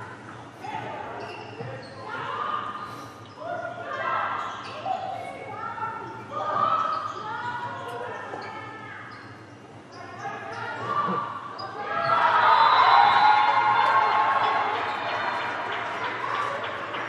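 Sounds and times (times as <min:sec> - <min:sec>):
players shouting and cheering: 0:10.6 - 0:17.0.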